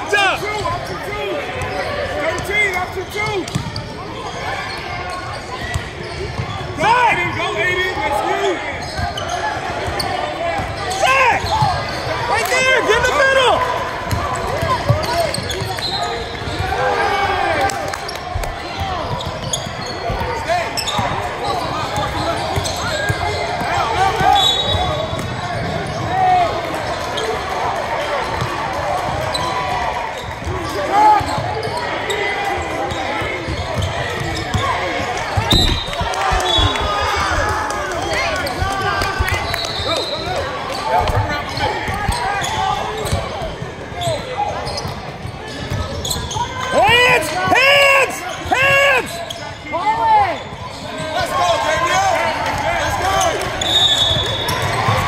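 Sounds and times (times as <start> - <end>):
sneakers squeaking on court: 0.8 - 7.6, 8.4 - 12.3, 14.0 - 16.8, 18.1 - 26.1, 29.2 - 46.8, 49.2 - 49.6, 50.3 - 51.3, 53.2 - 55.0.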